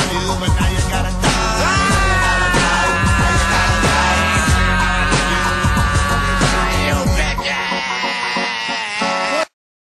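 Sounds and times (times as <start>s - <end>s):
music: 0.0s - 9.6s.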